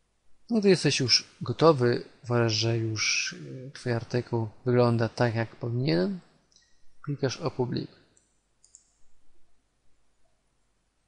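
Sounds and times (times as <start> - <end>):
computer mouse clicking: 8.2 - 9.1.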